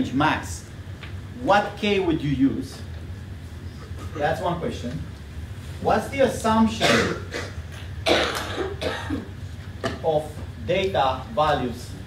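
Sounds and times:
person coughing: 0:06.8 - 0:09.3.

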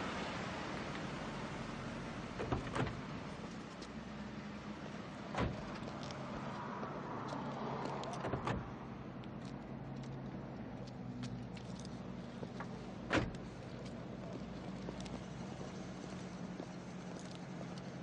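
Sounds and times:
car low hum: 0:00.0 - 0:18.0.

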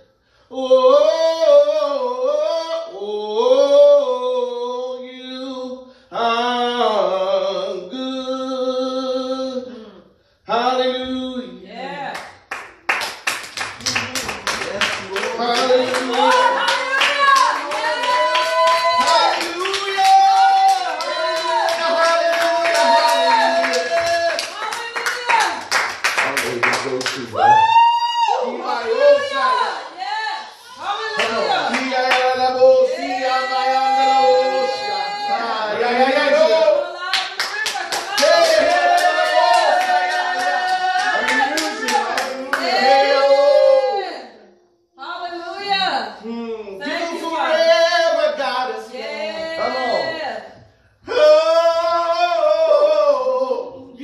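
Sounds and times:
man singing: 0:00.5 - 0:11.6, 0:14.2 - 0:16.6, 0:31.2 - 0:36.8, 0:51.0 - 0:54.0
hand clapping: 0:12.1 - 0:27.6, 0:37.1 - 0:42.7.

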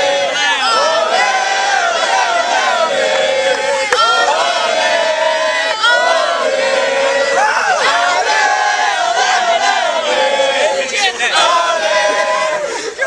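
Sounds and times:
group of voices chanting: 0:00.0 - 0:13.0.

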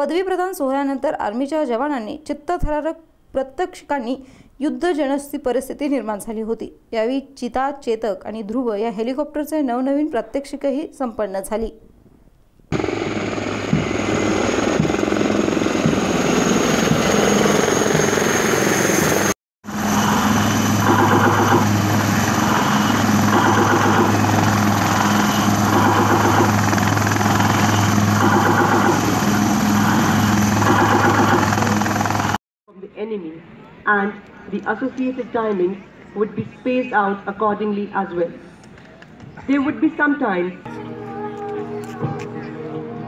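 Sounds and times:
helicopter rotor and turbine: 0:12.7 - 0:32.4.

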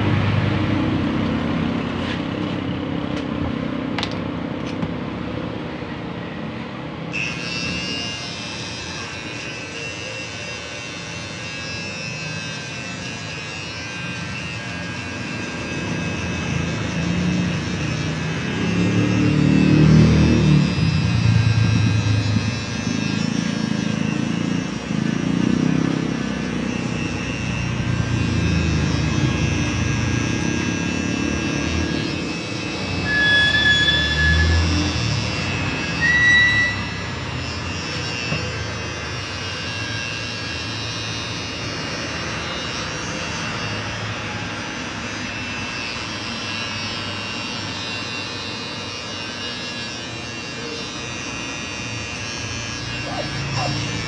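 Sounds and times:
electric hair clippers buzzing: 0:00.0 - 0:05.6, 0:07.0 - 0:54.0.

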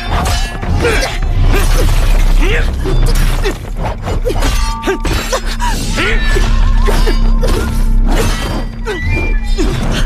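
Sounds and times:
dramatic film score: 0:00.0 - 0:10.0.

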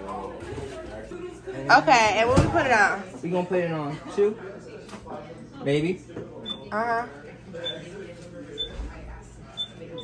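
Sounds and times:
microwave keypad beeps: 0:06.5 - 0:06.7, 0:08.6 - 0:08.8, 0:09.6 - 0:10.0.

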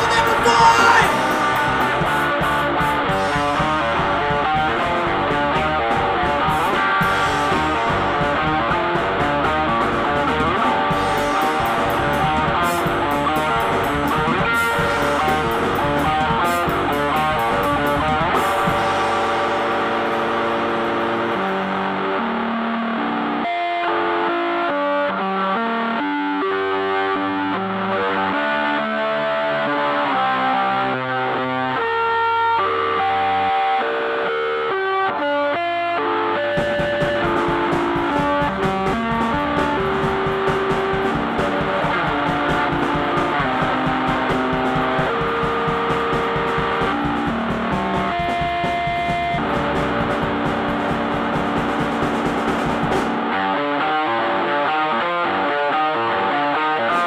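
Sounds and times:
distorted electric guitar: 0:00.0 - 0:57.0
rock band with drums: 0:00.0 - 0:57.0.

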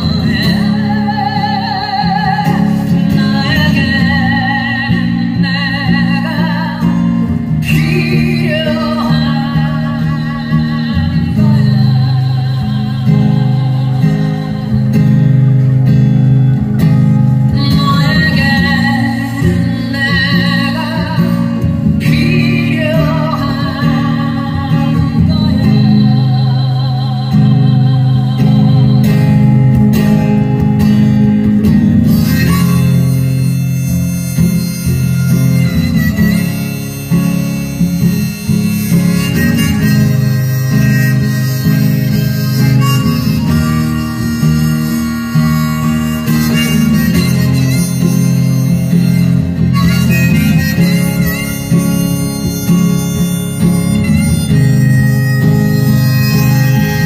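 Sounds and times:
harmonica melody: 0:00.0 - 0:57.0
strummed acoustic guitar: 0:00.0 - 0:57.0.

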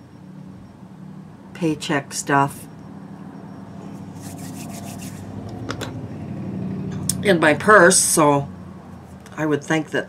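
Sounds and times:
steady low hum: 0:00.0 - 0:09.2
soft rubbing and handling: 0:03.8 - 0:05.3.

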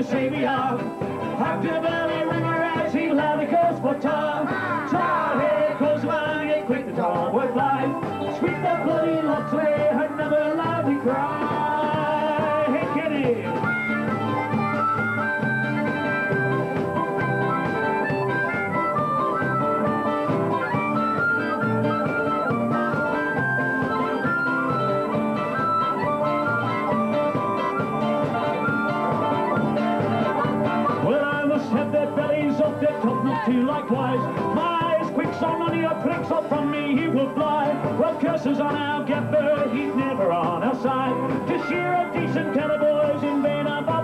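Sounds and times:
fiddle and guitars playing: 0:00.0 - 0:44.0.

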